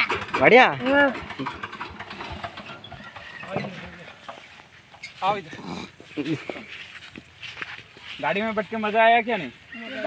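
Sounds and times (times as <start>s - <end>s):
diesel engine idling: 0.0s - 7.6s.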